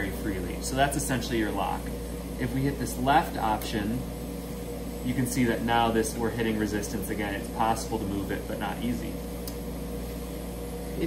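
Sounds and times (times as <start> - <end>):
machine hum with fan: 0.0 - 11.0.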